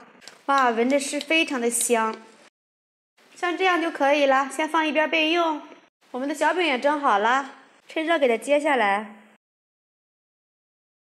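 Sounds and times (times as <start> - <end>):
woman speaking: 0.0 - 2.4, 3.4 - 9.4.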